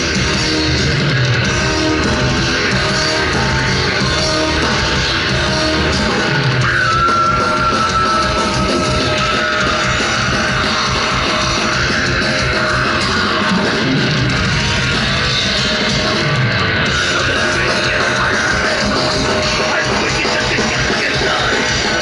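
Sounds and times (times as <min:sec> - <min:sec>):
distorted guitars: 0:00.0 - 0:22.0
drums: 0:00.0 - 0:22.0.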